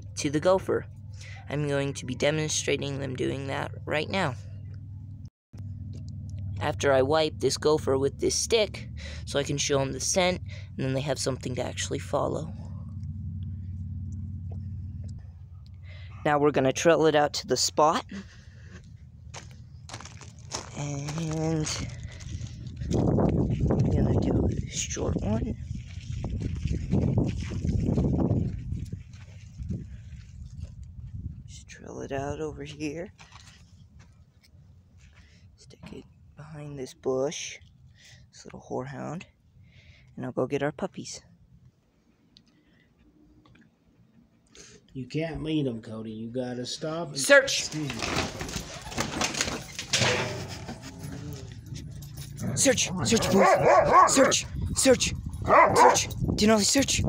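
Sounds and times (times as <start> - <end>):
steady low rumble: 0.0 - 36.7, 50.5 - 57.0
footsteps on gravel: 18.2 - 31.2, 33.1 - 34.2, 53.0 - 54.3
leashes rustling and clinking: 18.8 - 24.6, 47.7 - 56.3.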